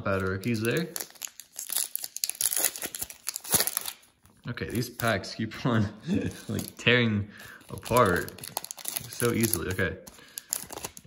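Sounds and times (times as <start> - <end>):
card pack wrapper crinkling and tearing: 0.0 - 5.4, 6.3 - 11.0.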